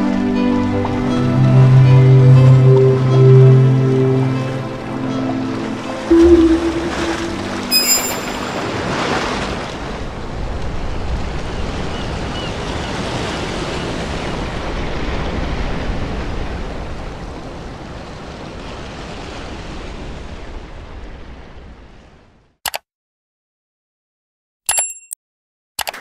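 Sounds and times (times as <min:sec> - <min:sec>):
ocean surf rushing: 0:06.1 - 0:09.6.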